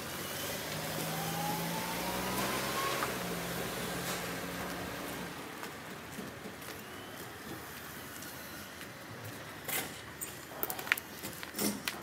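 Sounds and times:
vehicle driving past: 0.0s - 5.6s
thin rising whine: 0.2s - 3.7s.

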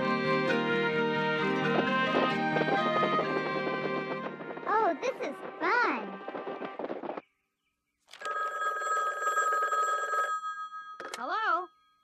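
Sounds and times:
old telephone bell ringing: 8.2s - 12.0s.

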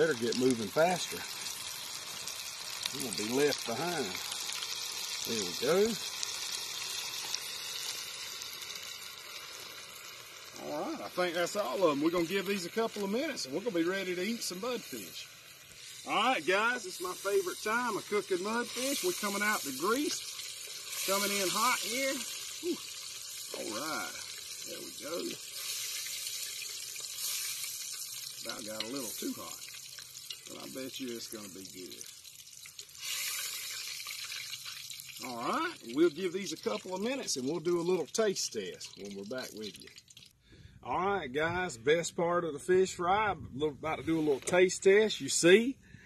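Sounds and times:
food sizzling in oil: 0.0s - 40.3s.

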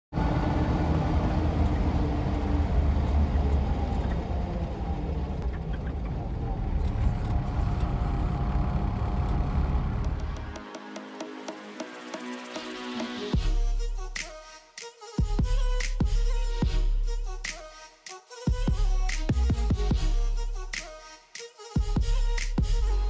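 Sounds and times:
vehicle engine and road rumble: 0.1s - 10.6s
music: 10.2s - 23.0s.

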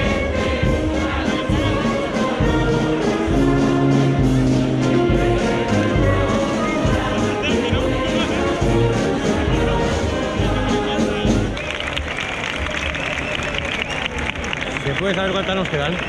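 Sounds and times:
brass band playing: 0.0s - 11.8s
crowd voices: 0.0s - 16.0s.

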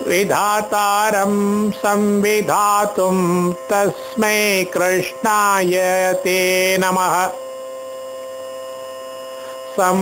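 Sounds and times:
man chanting: 0.0s - 7.4s, 9.6s - 10.0s
steady hum of tones: 0.0s - 10.0s.

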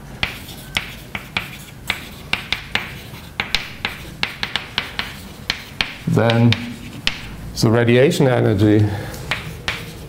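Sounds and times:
chalk tapping on blackboard: 0.2s - 7.4s, 9.3s - 10.0s.

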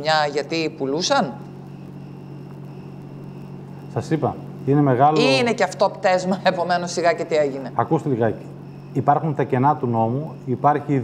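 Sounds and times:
faint high whine: 0.0s - 11.0s
low electrical hum: 0.0s - 11.0s.

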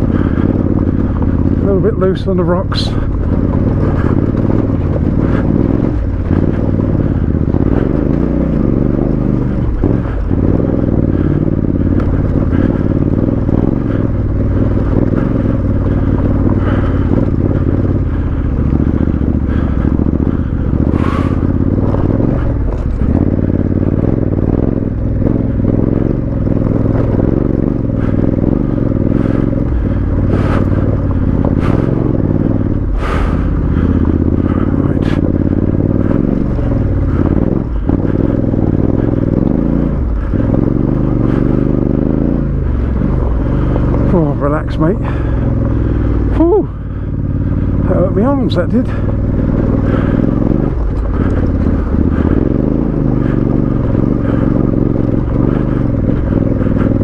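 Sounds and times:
stones scraping under tyres: 0.0s - 24.2s, 42.9s - 46.6s
motorcycle engine running: 0.0s - 57.0s.

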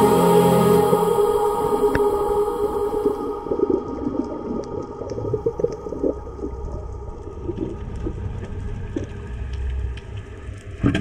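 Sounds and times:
underwater low rumble: 1.3s - 11.0s
faint ticks and crackles: 3.6s - 11.0s.

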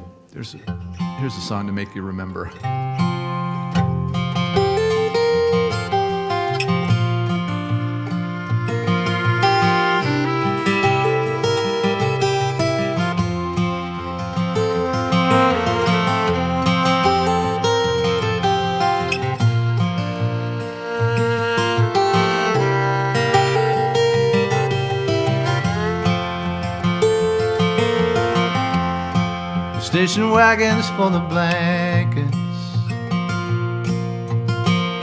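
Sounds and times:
acoustic guitar strumming: 0.0s - 35.0s
fiddle melody: 1.0s - 35.0s.

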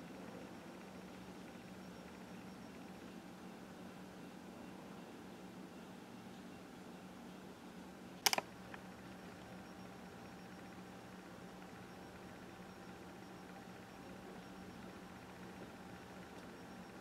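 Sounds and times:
faint room tone hum: 0.0s - 17.0s
sharp clicks: 8.2s - 8.9s.

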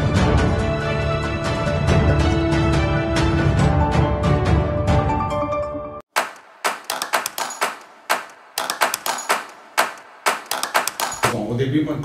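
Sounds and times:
sharp percussive strikes: 6.1s - 11.4s.

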